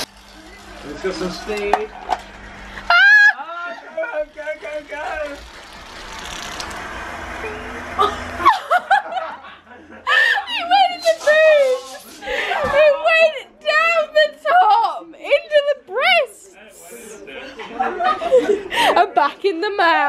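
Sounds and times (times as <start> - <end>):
people laughing and shrieking: 2.6 - 4.2, 7.5 - 13.5.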